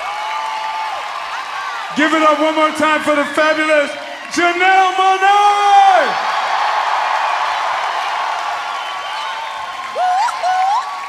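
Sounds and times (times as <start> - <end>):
crowd applauding and cheering: 0.0 - 11.0
person whooping: 9.2 - 11.0.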